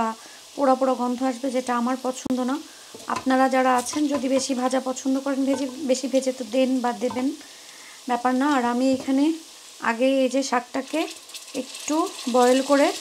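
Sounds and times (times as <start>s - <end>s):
woman talking: 0.0s - 7.4s, 8.1s - 13.0s
vegetables sizzling in hot oil: 0.0s - 13.0s
wooden spoon stirring: 5.5s - 5.8s.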